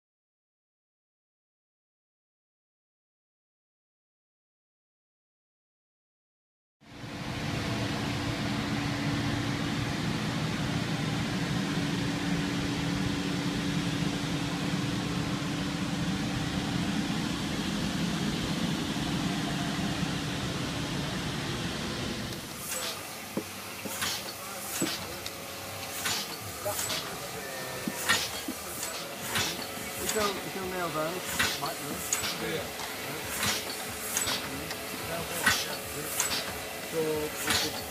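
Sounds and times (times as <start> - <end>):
machine mechanical hum: 6.8 - 37.9
sharp mechanical clacks: 22.4 - 37.9.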